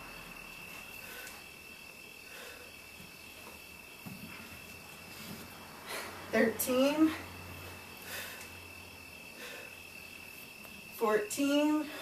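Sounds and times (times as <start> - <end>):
cricket trilling: 0.0 - 12.0
room hiss: 0.0 - 12.0.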